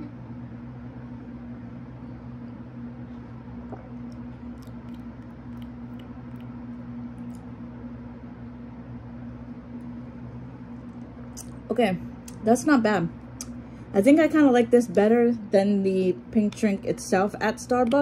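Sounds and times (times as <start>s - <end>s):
low electrical hum: 0.0s - 18.0s.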